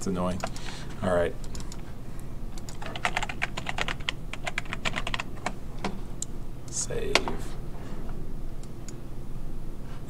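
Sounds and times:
computer keyboard typing: 1.4s - 1.8s, 2.5s - 5.5s.

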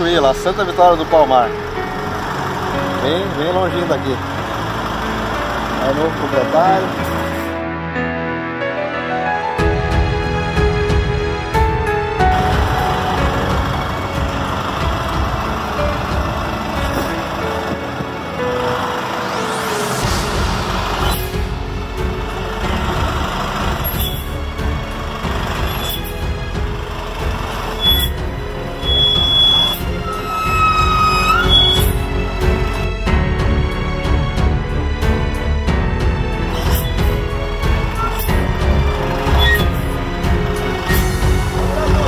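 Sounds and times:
diesel truck driving off: 0.0s - 8.3s, 9.6s - 42.0s
background music: 0.0s - 42.0s
high squeal: 18.6s - 21.3s, 23.8s - 24.4s, 25.7s - 26.1s, 27.7s - 32.0s, 39.2s - 39.9s, 40.8s - 41.2s.

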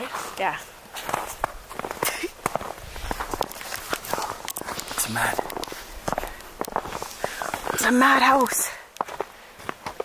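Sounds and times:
footsteps on snow: 0.0s - 10.0s.

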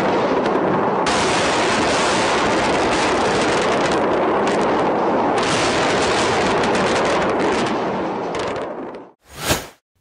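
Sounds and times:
rumble of explosions: 0.0s - 9.2s.

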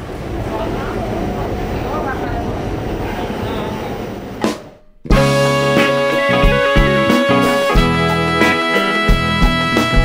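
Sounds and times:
passengers' voices: 0.0s - 4.5s
subway train rumble: 0.0s - 8.3s.

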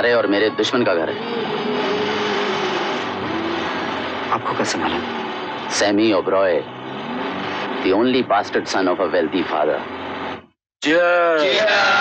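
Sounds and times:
car engine and road noise: 0.0s - 10.6s.

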